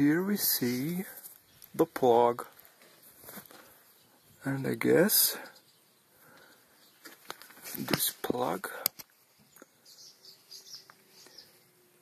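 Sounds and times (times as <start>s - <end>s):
faint bird chirps: 2.5s - 7.2s, 9.2s - 12.0s.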